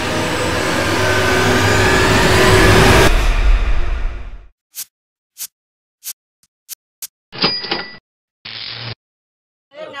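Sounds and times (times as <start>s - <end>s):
noisy crash: 2.4s - 4.5s.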